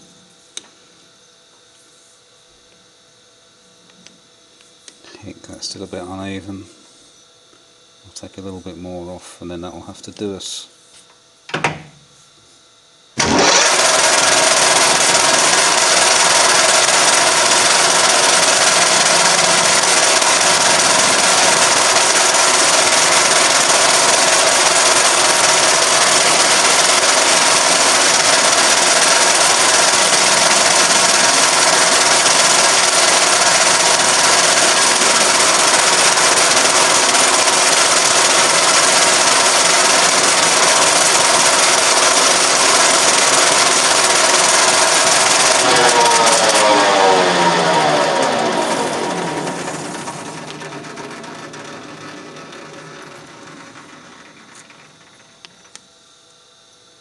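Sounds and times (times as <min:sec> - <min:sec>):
metal lathe running: 0:13.2 - 0:55.5.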